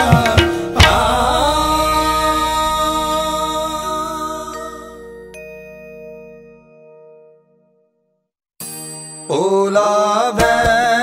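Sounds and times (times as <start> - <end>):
hand drum strokes: 0.0 - 4.4
harmonium chord: 0.3 - 5.8.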